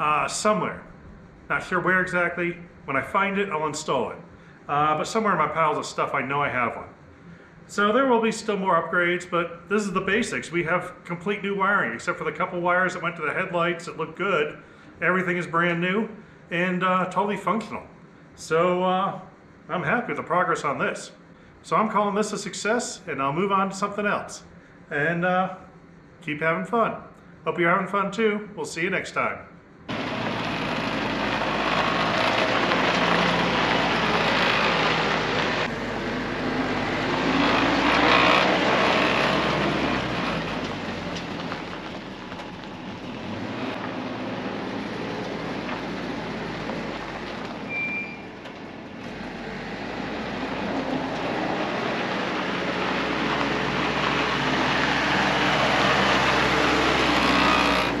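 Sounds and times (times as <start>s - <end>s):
jeep engine driving: 29.9s - 58.0s.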